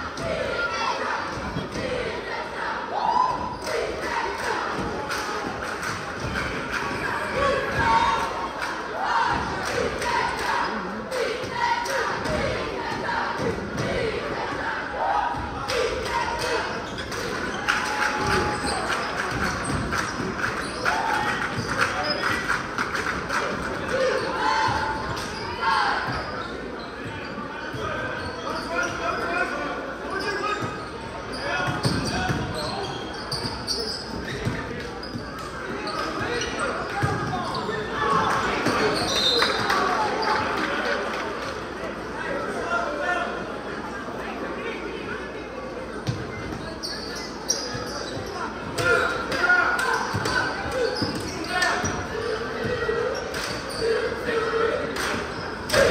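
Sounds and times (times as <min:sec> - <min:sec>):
crowd voices and shouts: 0:00.0 - 0:55.9.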